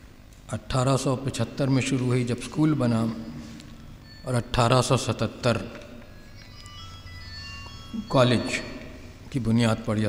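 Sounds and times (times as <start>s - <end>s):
low steady hum: 0.0s - 10.0s
faint electronic tune: 1.4s - 10.0s.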